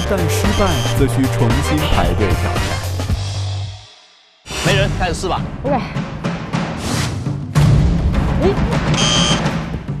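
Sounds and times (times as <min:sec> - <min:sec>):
high buzzer sound effect: 0:00.0 - 0:01.1, 0:09.0 - 0:09.5
dramatic music with heavy drums: 0:00.0 - 0:10.0.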